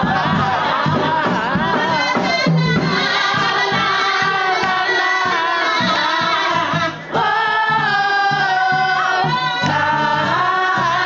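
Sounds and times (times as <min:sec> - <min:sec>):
drums: 0:00.0 - 0:11.0
two singers holding notes: 0:00.0 - 0:11.0.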